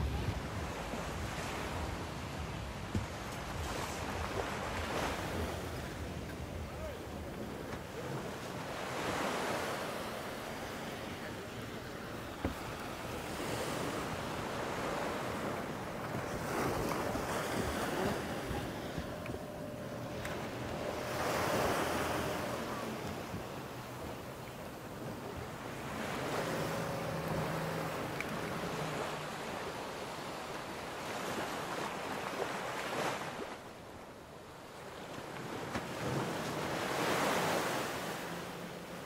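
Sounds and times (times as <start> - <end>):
wind buffeting microphone: 0.0 - 9.3
small waves breaking on sand: 0.0 - 39.0
faint motor hum: 11.4 - 30.9.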